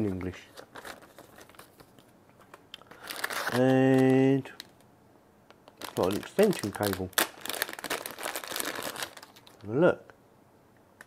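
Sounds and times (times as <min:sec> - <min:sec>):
plastic bag crinkling: 0:00.0 - 0:04.8, 0:05.6 - 0:09.7.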